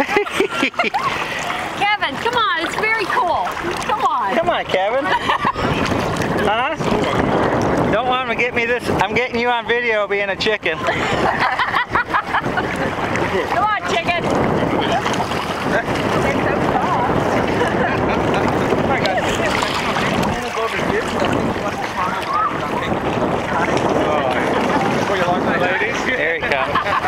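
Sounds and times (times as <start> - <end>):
sea water sloshing and lapping: 0.0 - 27.0
wind buffeting microphone: 0.0 - 27.0.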